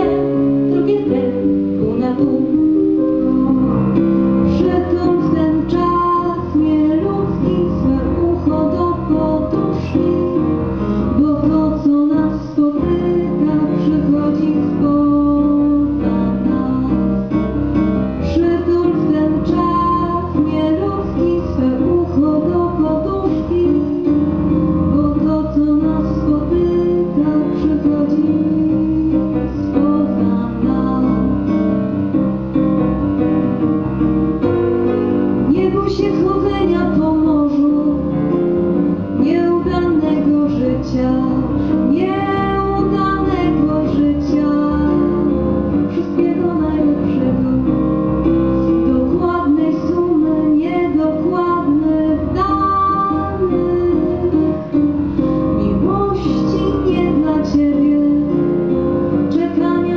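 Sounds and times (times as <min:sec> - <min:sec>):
woman singing into a microphone: 0:00.0 - 0:31.7, 0:35.4 - 0:59.9
instrumental accompaniment: 0:00.0 - 0:59.9.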